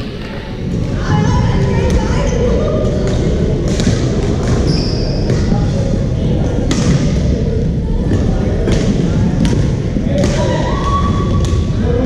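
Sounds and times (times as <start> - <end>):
shoe squeaking on court floor: 4.6 - 5.5.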